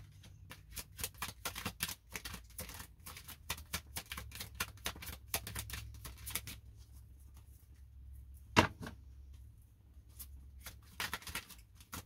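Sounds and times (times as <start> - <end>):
cards being shuffled: 0.0 - 6.9, 10.1 - 12.0.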